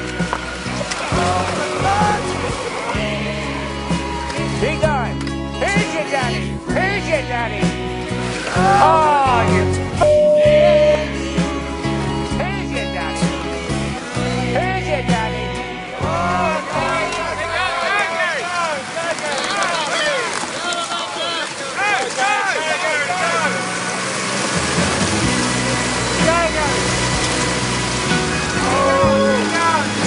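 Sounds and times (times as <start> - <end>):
tracks churning through slush: 0.0 - 4.5, 17.2 - 30.0
tracked vehicle engine working hard: 22.8 - 30.0.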